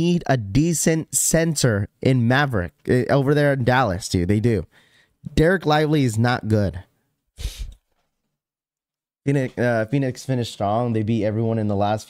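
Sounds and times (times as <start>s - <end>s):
man sighing: 7.4s - 7.8s.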